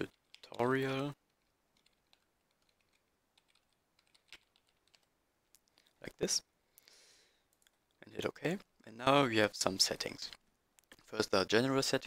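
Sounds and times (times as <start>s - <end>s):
faint keyboard typing: 0.0s - 6.0s, 7.4s - 8.0s, 10.0s - 11.4s.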